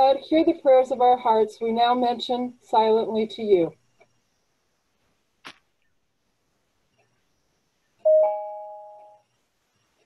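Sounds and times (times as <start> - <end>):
two-note chime: 8.1 - 9.2.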